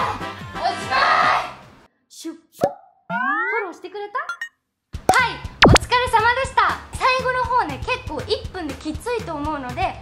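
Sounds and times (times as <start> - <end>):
cartoon pop with upward sweep: 2.6 - 3.4, 5.1 - 5.8
brief blip: 5.1 - 5.8.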